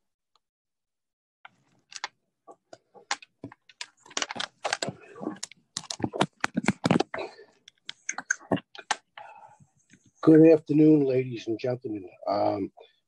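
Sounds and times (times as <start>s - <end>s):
microphone handling clicks and rubbing: 1.5s - 10.2s.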